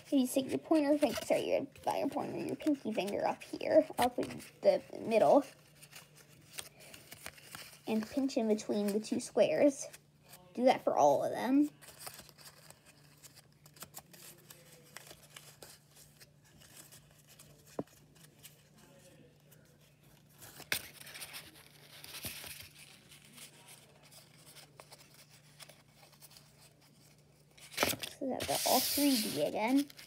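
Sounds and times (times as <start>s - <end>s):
folded paper rustling and crackling: 0.0s - 9.0s, 11.7s - 30.0s.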